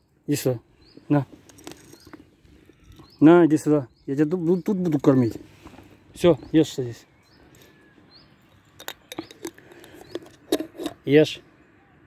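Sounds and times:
cat crunching dry kibble: 0:08.8 - 0:11.0.

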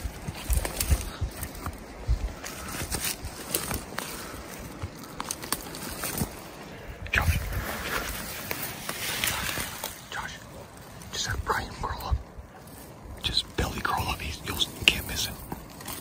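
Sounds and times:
boots crunching through dry grass: 0:00.0 - 0:06.7, 0:07.4 - 0:11.0.

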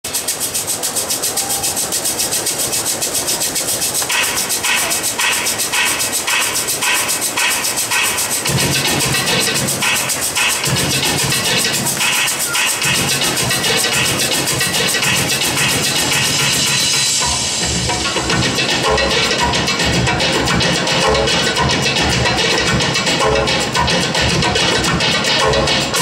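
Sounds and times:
dance music with ticking pulse: 0:00.1 - 0:26.0
heavy bass line: 0:04.1 - 0:26.0.

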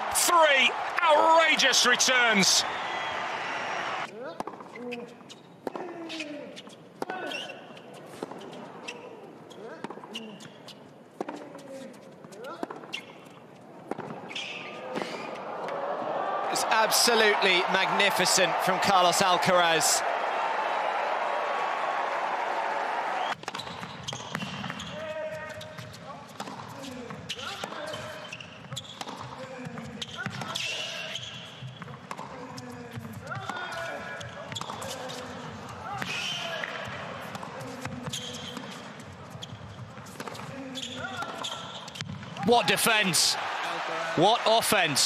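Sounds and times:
stadium crowd cheering and applauding: 0:00.0 - 0:04.1, 0:15.2 - 0:23.4, 0:42.4 - 0:45.0
shoes squeaking on court: 0:04.4 - 0:15.5, 0:23.3 - 0:42.4.

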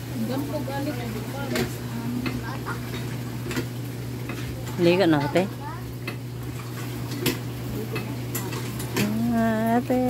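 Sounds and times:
water pump handle clanking: 0:00.2 - 0:10.0.

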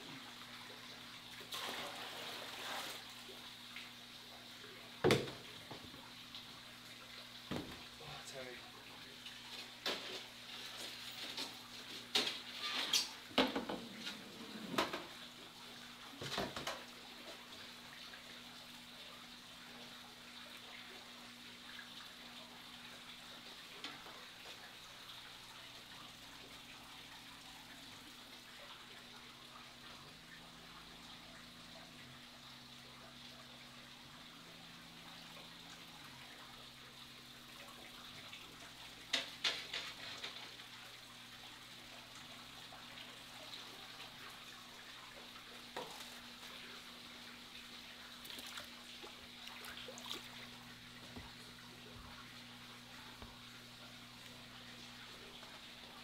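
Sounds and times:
water splashing and sloshing: 0:00.0 - 0:08.4, 0:09.0 - 0:56.0
aquarium equipment humming: 0:00.0 - 0:56.0.

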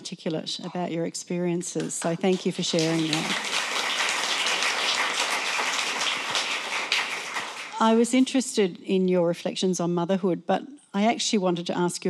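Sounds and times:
audience applauding: 0:02.3 - 0:07.9.

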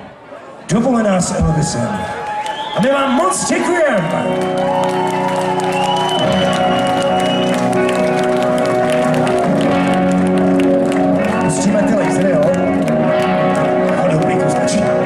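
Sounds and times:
crowd applauding and cheering: 0:01.4 - 0:15.0
live rock band playing chords: 0:04.1 - 0:15.0.

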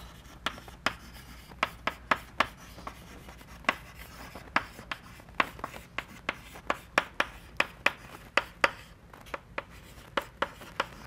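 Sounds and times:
chalk tapping and scraping on blackboard: 0:00.0 - 0:11.0.

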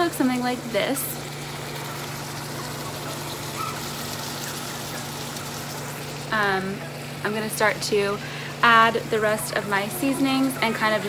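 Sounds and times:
meat sizzling in a skillet: 0:00.0 - 0:11.0
microwave oven humming: 0:00.0 - 0:11.0.

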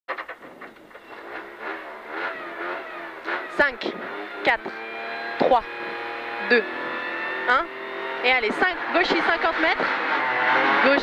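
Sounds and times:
rally car engine idling: 0:00.1 - 0:11.0.

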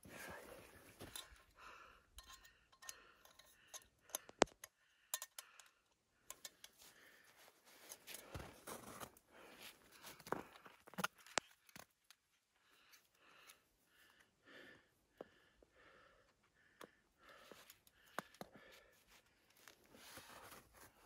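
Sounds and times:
clicks and taps of camp gear: 0:00.9 - 0:01.6, 0:02.2 - 0:09.2, 0:10.0 - 0:12.3, 0:16.8 - 0:21.0.

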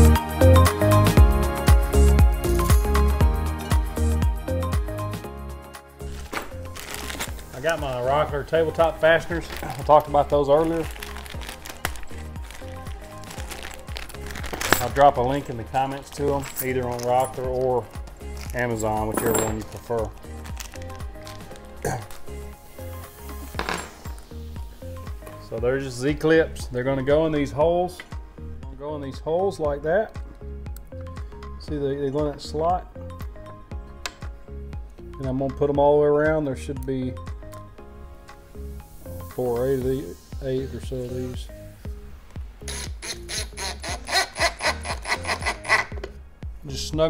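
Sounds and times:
background music: 0:00.0 - 0:47.0
metal fasteners clinking: 0:08.8 - 0:22.3, 0:23.5 - 0:24.3.

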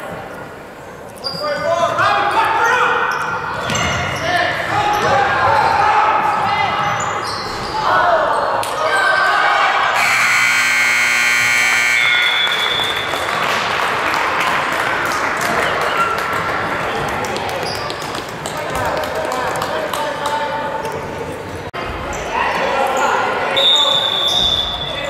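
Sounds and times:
steady buzzing tone: 0:10.0 - 0:12.6.

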